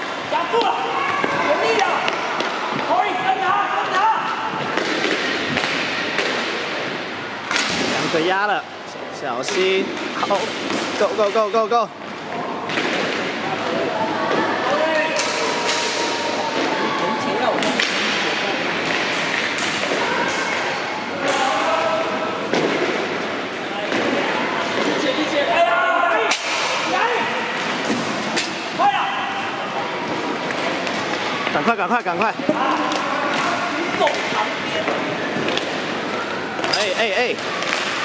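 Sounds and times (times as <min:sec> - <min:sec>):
sticks clacking on puck and boards: 0:04.7 - 0:06.6, 0:07.5 - 0:07.9, 0:12.7 - 0:14.4, 0:15.0 - 0:16.8, 0:17.6 - 0:21.6, 0:27.6 - 0:28.6, 0:32.2 - 0:38.0
distant shouts: 0:28.6 - 0:30.1.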